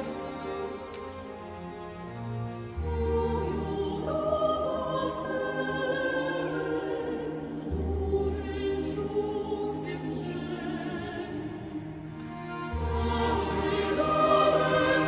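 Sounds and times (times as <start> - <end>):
string orchestra: 0.0 - 15.0
mixed choir singing carol: 2.8 - 15.0.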